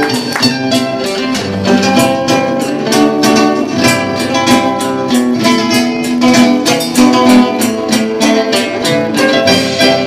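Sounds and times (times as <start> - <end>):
acoustic guitars strummed and picked: 0.0 - 10.0
percussion: 0.0 - 10.0.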